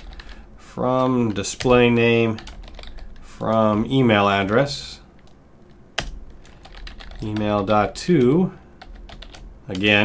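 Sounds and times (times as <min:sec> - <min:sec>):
computer keyboard typing: 0:00.0 - 0:00.4, 0:01.0 - 0:03.8, 0:06.0 - 0:10.0.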